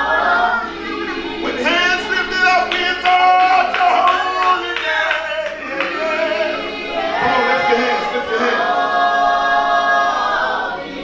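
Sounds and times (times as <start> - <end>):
voices singing unaccompanied: 0.0 - 11.0.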